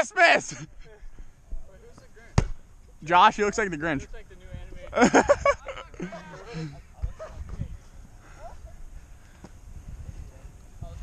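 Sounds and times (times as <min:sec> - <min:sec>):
football impact thud: 0:02.3 - 0:02.6.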